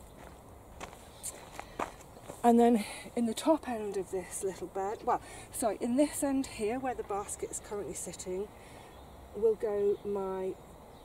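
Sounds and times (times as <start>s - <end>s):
soft footsteps on garden ground: 0.0s - 8.5s.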